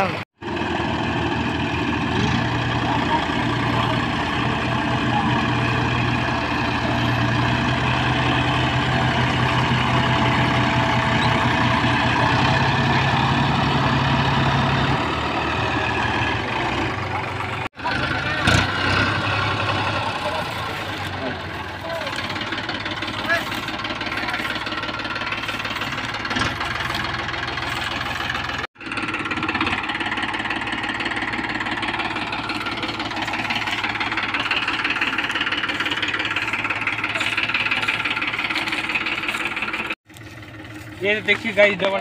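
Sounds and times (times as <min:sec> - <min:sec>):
diesel tractor engines under load: 0:00.0 - 0:42.0.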